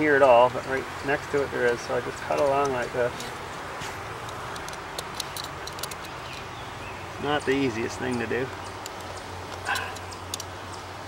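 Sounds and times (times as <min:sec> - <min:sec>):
knife ticking through wax comb: 0:08.1 - 0:10.9.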